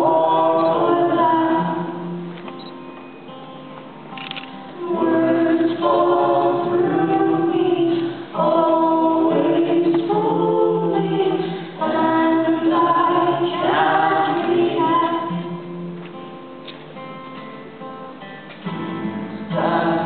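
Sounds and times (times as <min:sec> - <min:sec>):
woman and man singing: 0:00.0 - 0:02.2, 0:04.8 - 0:15.6, 0:19.4 - 0:20.0
acoustic guitar: 0:00.0 - 0:20.0.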